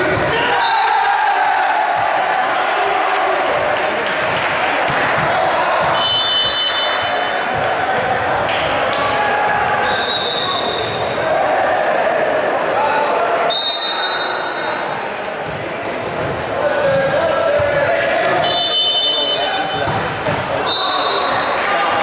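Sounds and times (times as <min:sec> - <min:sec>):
indistinct voices and chatter: 0:01.4 - 0:22.0
volleyball bouncing on hardwood floor: 0:04.2 - 0:06.6, 0:19.7 - 0:20.4.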